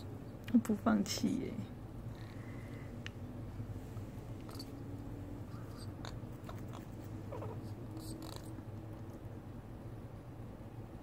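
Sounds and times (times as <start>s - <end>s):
steady low hum: 0.0s - 11.0s
parrots nibbling crackles: 5.5s - 9.2s.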